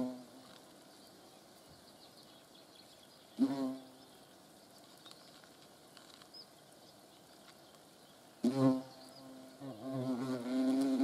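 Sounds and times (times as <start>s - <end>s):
hornet wings buzzing: 0.0s - 2.0s, 2.6s - 11.0s.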